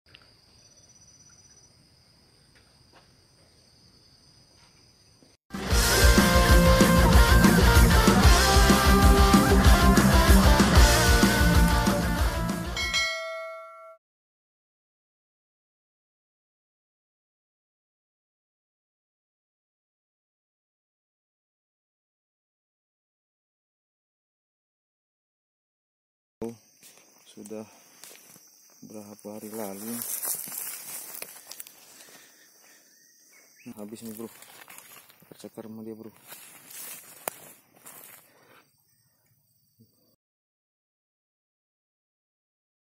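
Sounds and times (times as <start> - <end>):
rock guitar music: 5.5 - 12.9
bell-like notification chime: 12.8 - 14.0
footsteps on dry leaves and twigs: 26.8 - 32.8, 33.6 - 38.6.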